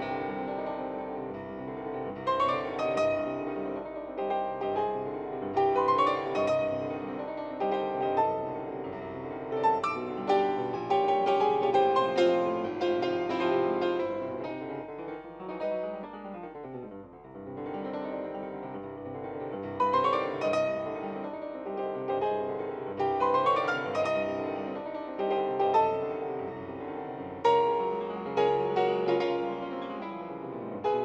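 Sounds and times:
solo classical piano: 0.0s - 31.0s.

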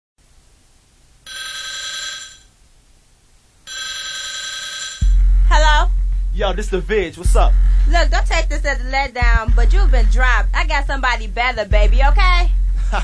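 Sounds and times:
telephone ringing: 1.3s - 2.5s, 3.7s - 5.1s
deep hip-hop bass beat: 5.0s - 13.0s
wavering vocal: 5.5s - 13.0s.

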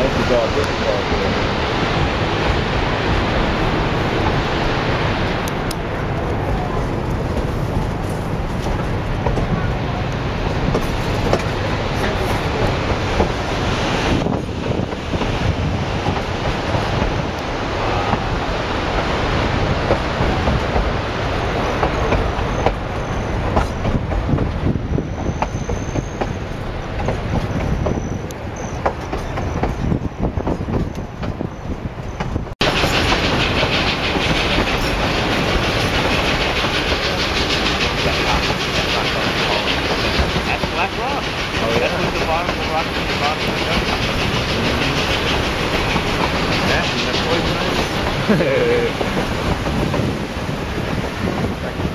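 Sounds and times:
train wheels clattering on rails: 0.0s - 51.9s.

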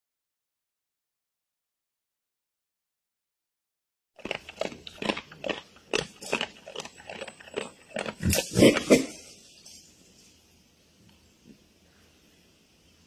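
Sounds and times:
wild boar chewing and crunching food: 4.2s - 9.4s.

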